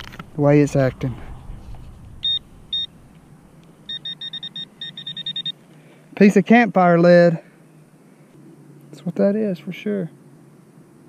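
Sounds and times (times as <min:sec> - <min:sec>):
metal detector pinpointer beeping: 0:02.2 - 0:02.9, 0:03.9 - 0:05.6.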